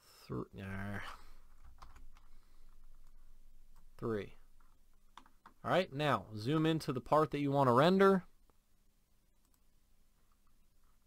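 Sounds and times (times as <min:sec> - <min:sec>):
keyboard and mouse clicking: 0:01.5 - 0:02.3, 0:04.6 - 0:05.6, 0:09.4 - 0:09.7.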